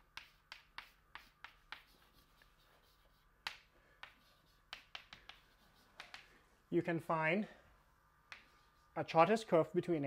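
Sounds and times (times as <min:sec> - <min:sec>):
chalk tapping on blackboard: 0:00.0 - 0:06.4, 0:08.2 - 0:09.0.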